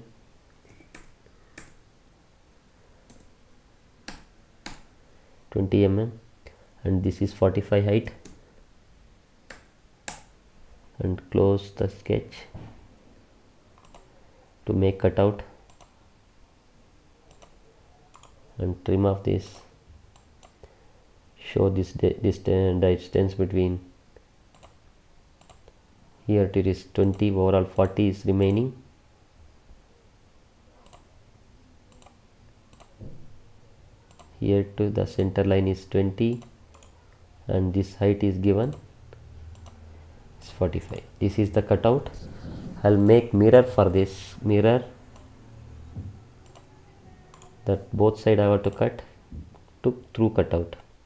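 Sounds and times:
computer mouse click: 0:00.6 - 0:01.8, 0:13.8 - 0:14.1, 0:15.7 - 0:15.9, 0:17.3 - 0:18.4, 0:24.5 - 0:24.8, 0:25.4 - 0:25.8, 0:30.8 - 0:31.1, 0:31.9 - 0:33.0, 0:34.1 - 0:34.3, 0:36.3 - 0:37.0, 0:39.5 - 0:39.8, 0:46.4 - 0:46.7, 0:47.3 - 0:47.6.

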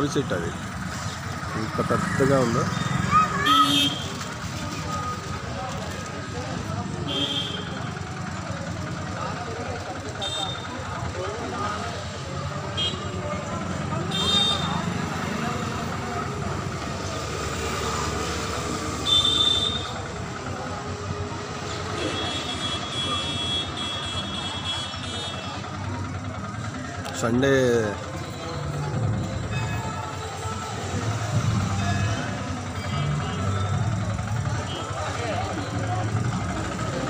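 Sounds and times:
crowd chatter: 0:00.0 - 0:37.0
vehicles passing: 0:00.0 - 0:37.0.

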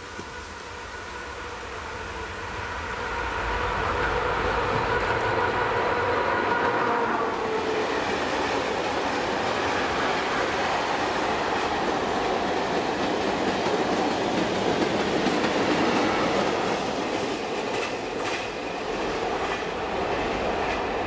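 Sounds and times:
train wheels on rail: 0:00.0 - 0:21.0.

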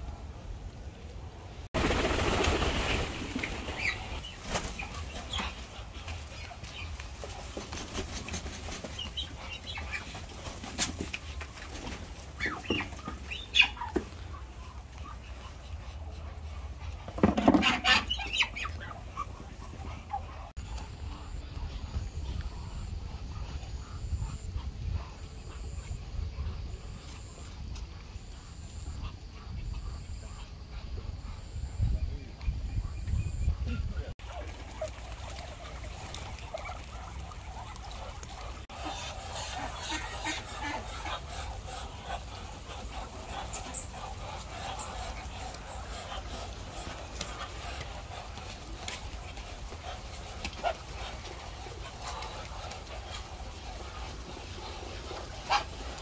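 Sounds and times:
wind rumbling on microphone: 0:20.6 - 0:28.1, 0:28.8 - 0:34.2.

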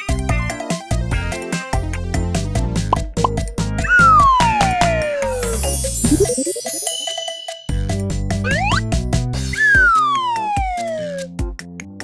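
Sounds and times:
upbeat cartoon music: 0:00.0 - 0:12.0
descending whistle slide effect: 0:09.6 - 0:11.2.

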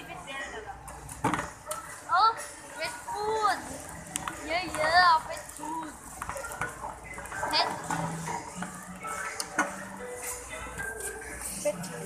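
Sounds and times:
background music: 0:00.0 - 0:12.0
people's voices: 0:00.0 - 0:12.0.

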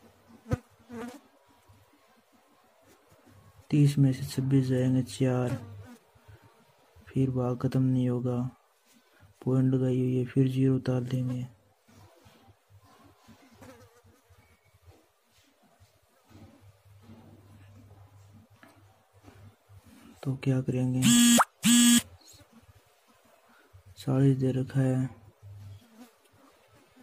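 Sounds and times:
faint low buzz: 0:21.0 - 0:22.4.

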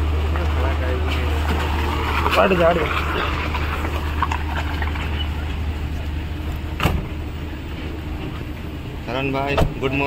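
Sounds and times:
car engine idling: 0:00.0 - 0:10.0.

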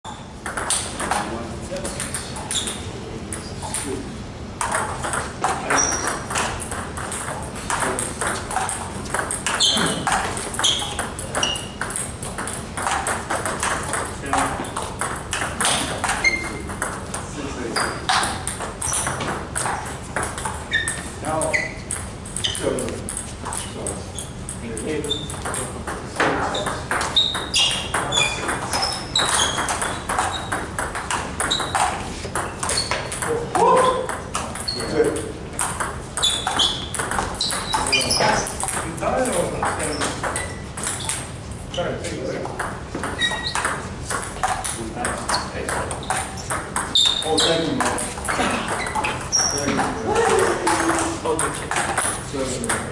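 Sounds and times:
table tennis balls clicking: 0:00.1 - 0:04.0, 0:04.6 - 0:41.4, 0:42.2 - 0:52.9.

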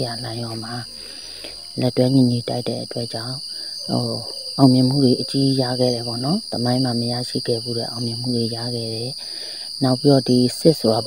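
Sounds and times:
high-pitched background drone: 0:00.0 - 0:08.6
person speaking: 0:00.0 - 0:09.2.

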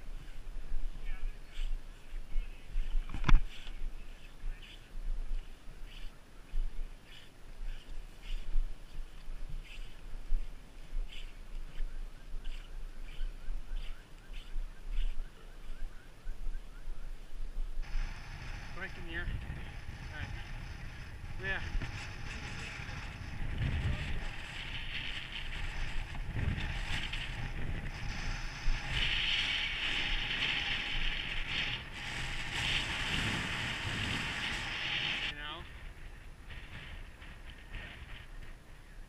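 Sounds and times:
hard breathing: 0:09.6 - 0:11.7.

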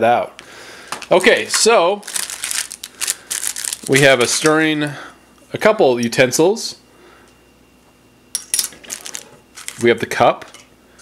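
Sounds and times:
plastic utensils clattering on table: 0:08.5 - 0:09.8.

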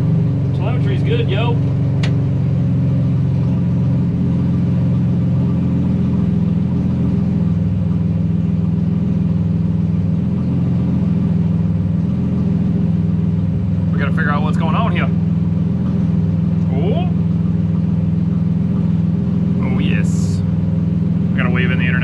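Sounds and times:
race car engine idling: 0:00.0 - 0:22.0.

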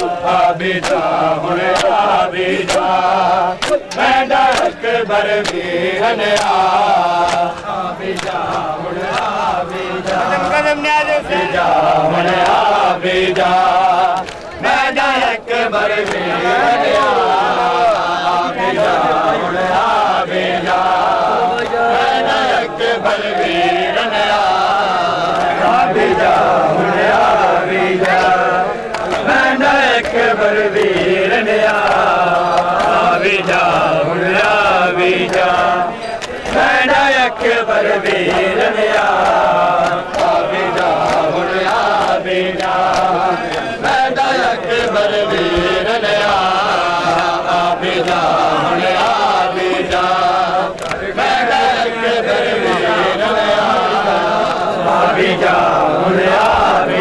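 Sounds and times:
men chanting a lament: 0:00.0 - 0:57.0.

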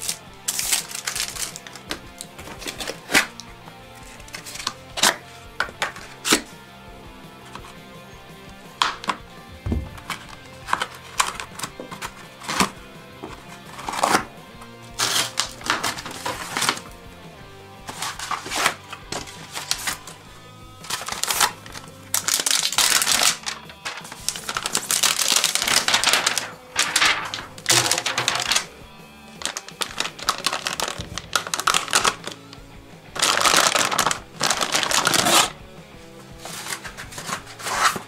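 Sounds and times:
wrapping rustling and tearing: 0:00.0 - 0:03.4, 0:04.0 - 0:06.5, 0:10.0 - 0:14.3, 0:15.0 - 0:16.9, 0:17.9 - 0:20.2, 0:20.8 - 0:32.6, 0:33.2 - 0:35.6, 0:36.4 - 0:38.0
background music: 0:00.0 - 0:38.0.

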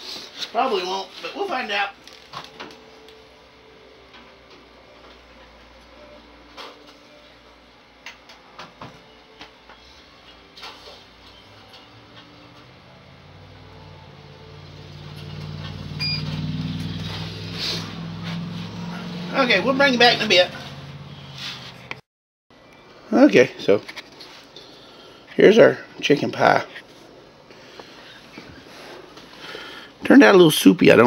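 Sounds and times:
oven low hum: 0:02.3 - 0:22.0
short electronic beep: 0:16.0 - 0:16.4.

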